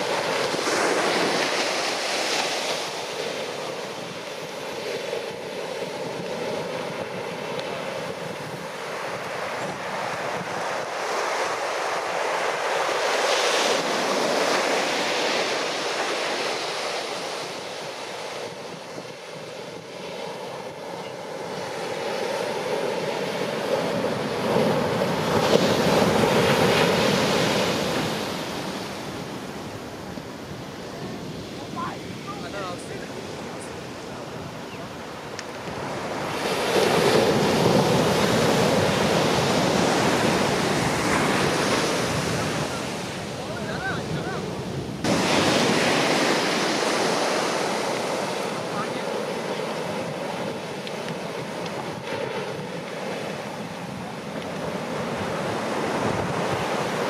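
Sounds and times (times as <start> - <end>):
ocean waves crashing: 0.0 - 57.0.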